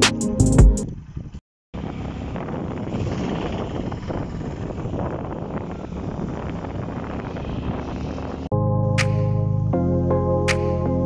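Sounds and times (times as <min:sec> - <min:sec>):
motorcycle engine: 0:00.8 - 0:08.5
wind rushing over microphone: 0:00.8 - 0:08.5
road noise: 0:00.8 - 0:10.6.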